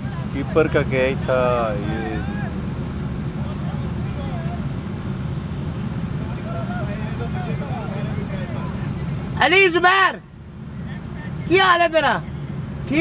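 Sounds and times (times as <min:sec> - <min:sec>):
distant voices talking: 0:00.0 - 0:13.0.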